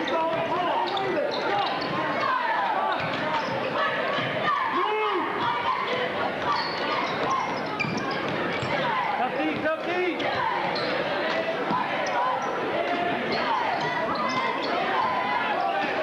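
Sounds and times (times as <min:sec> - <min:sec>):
crowd chatter and shouts: 0:00.0 - 0:16.0.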